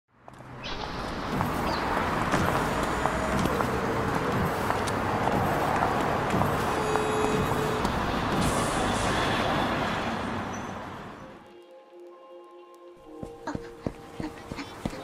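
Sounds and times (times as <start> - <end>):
traffic noise: 0.1 - 15.0.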